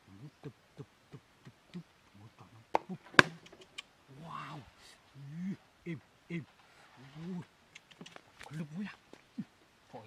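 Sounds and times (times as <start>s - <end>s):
small ticks: 3.3s - 3.9s, 7.7s - 8.6s.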